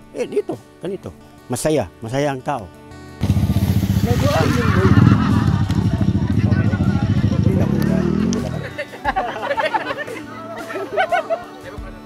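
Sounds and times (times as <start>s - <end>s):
dirt bike engine running: 3.2s - 8.6s
people calling out: 4.2s - 8.6s.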